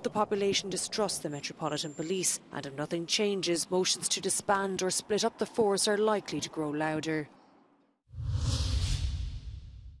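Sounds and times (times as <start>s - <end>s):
low rumble: 8.1s - 10.0s
whoosh swish: 8.1s - 10.0s.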